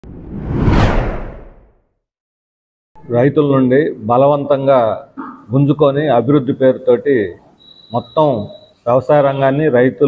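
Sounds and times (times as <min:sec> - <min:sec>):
whoosh with deep rumble: 0:00.0 - 0:01.7.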